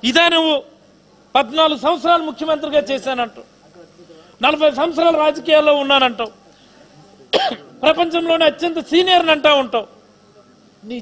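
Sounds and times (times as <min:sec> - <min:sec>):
man speaking: 0:00.0 - 0:00.7, 0:01.3 - 0:11.0
man coughing: 0:07.3 - 0:07.8.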